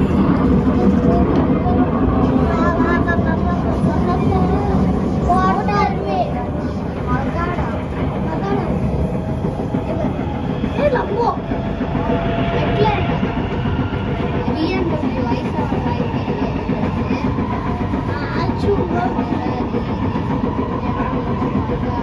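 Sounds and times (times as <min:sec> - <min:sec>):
passengers' voices: 0:00.0 - 0:22.0
train wheels rumbling on rail: 0:00.0 - 0:22.0.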